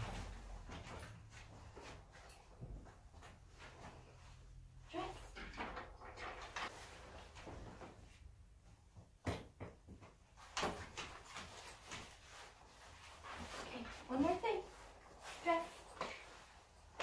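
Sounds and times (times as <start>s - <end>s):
leash and harness clinking: 13.1s - 17.0s.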